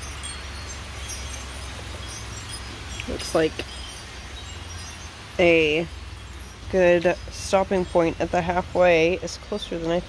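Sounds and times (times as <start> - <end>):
faint high tinkles: 0.0 - 9.7.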